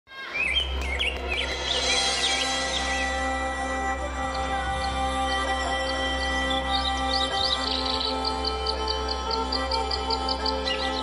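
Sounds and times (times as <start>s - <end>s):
birds chirping: 0.1s - 11.0s
droning chord: 1.4s - 11.0s.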